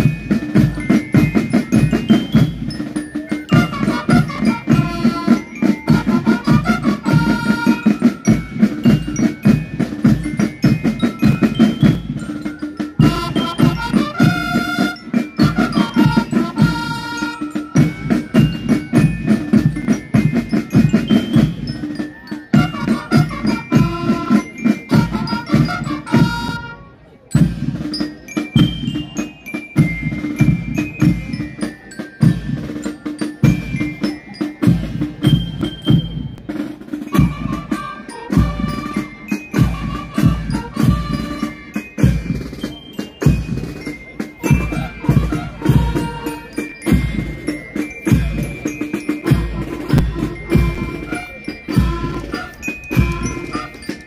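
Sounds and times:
bell-like melody: 0:00.0 - 0:54.0
marching band playing: 0:00.0 - 0:54.0
rapid drum strokes: 0:27.4 - 0:54.0.

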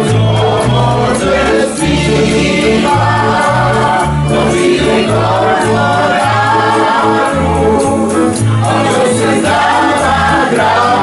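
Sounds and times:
acoustic folk band playing: 0:00.0 - 0:11.0
upright bass line: 0:00.0 - 0:11.0
voices singing together: 0:00.0 - 0:11.0.

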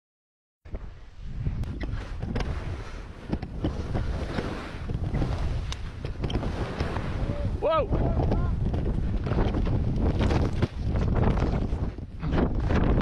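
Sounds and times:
wind buffeting microphone: 0:00.7 - 0:13.0.

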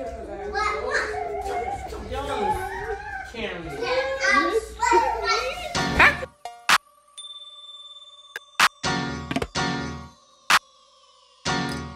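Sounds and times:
lively voices talking: 0:00.0 - 0:06.3.

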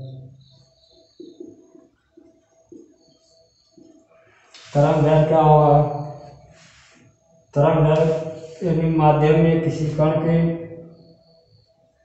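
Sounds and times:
bird cooing: 0:00.0 - 0:04.4.

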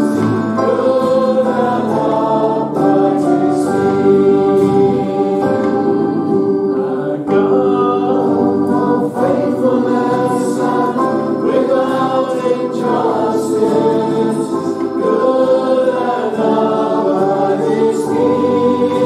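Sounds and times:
congregation singing: 0:00.0 - 0:19.0
instrumental accompaniment: 0:00.0 - 0:19.0.

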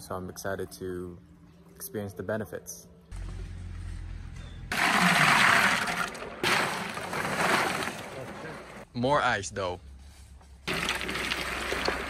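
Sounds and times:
ice cubes splashing into water: 0:04.7 - 0:08.8, 0:10.7 - 0:12.0.

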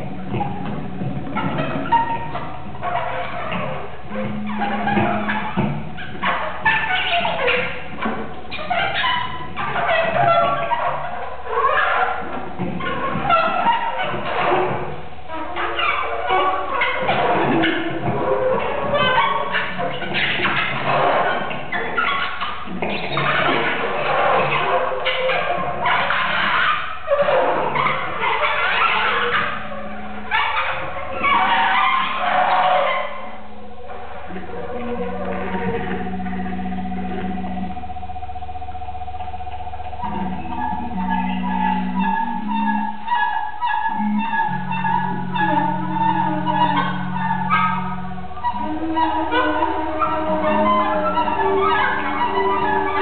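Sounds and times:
steady low hum: 0:00.0 - 0:21.7, 0:29.3 - 0:53.0
live electronics: 0:00.0 - 0:53.0
reed instruments squealing: 0:00.0 - 0:53.0
saxophone: 0:00.0 - 0:53.0.

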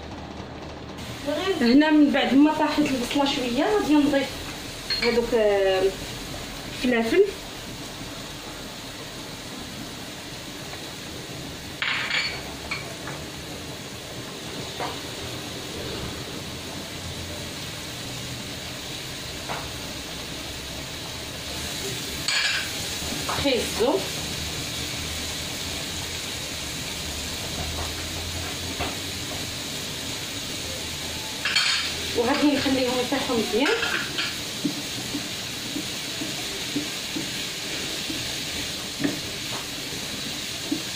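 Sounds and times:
vegetables sizzling in frying pan: 0:01.0 - 0:40.9.

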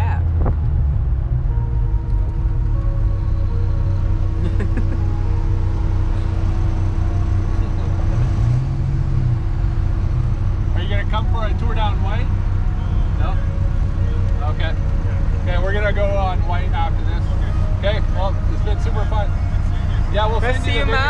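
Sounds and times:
car engine running: 0:00.0 - 0:21.0.

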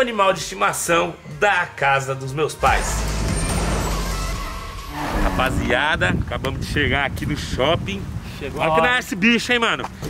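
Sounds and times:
heavy vehicle driving past: 0:02.7 - 0:06.1.

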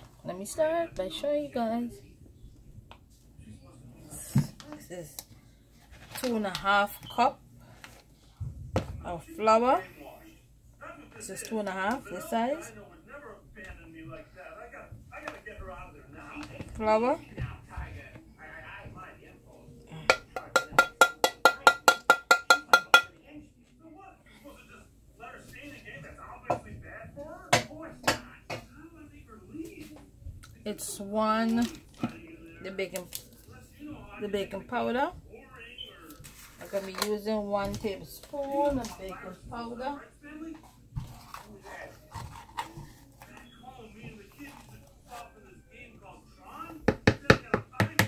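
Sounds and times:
metal spoon tapping container: 0:20.1 - 0:23.1.

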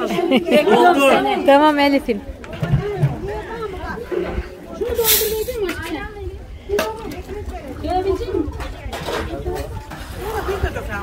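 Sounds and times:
women talking and calling: 0:00.0 - 0:11.0.

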